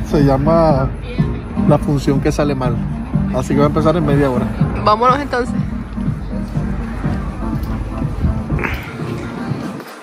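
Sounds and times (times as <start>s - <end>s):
music with low beat: 0.0s - 10.0s.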